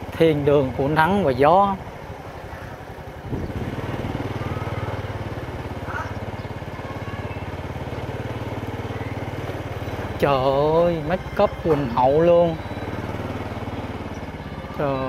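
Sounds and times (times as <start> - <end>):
small motorcycle engine running: 0.0 - 15.0.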